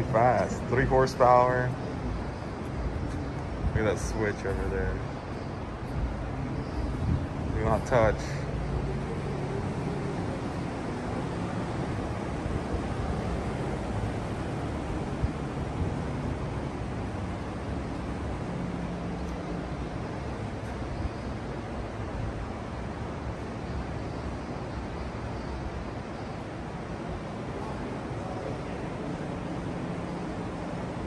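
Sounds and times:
indoor hall background noise: 0.0s - 31.0s.

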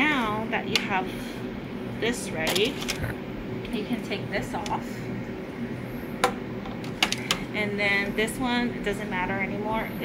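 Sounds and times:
steady room hum: 0.0s - 10.0s.

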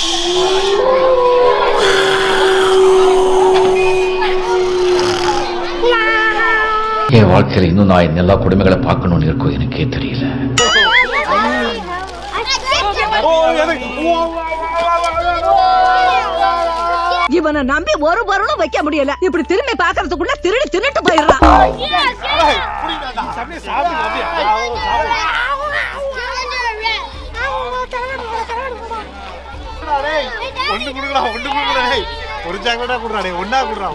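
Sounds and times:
children talking and calling out: 4.2s - 7.1s, 10.7s - 13.3s, 24.4s - 27.6s.

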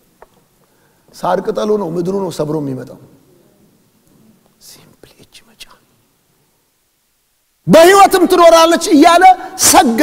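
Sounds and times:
man whispering faintly: 4.6s - 6.0s.

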